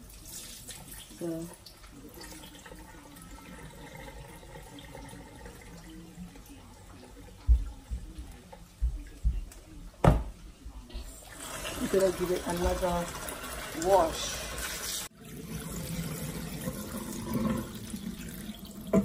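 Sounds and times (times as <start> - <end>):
water pouring into steel sink: 0.0 - 7.4, 11.1 - 19.0.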